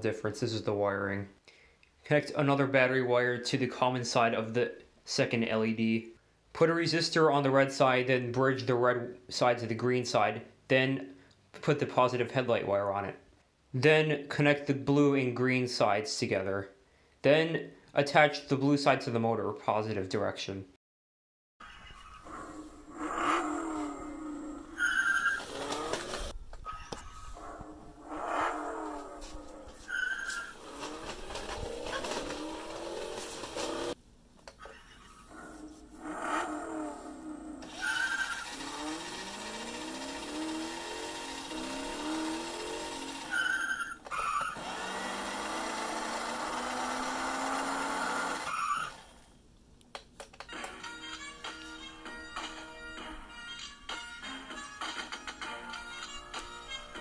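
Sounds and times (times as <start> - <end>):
tire screech effect: 22.1 - 26.3, 27.4 - 34.0, 35.3 - 45.0, 46.4 - 49.2
recorded toy engine revs: 22.9 - 26.4, 30.3 - 34.0, 37.6 - 49.4.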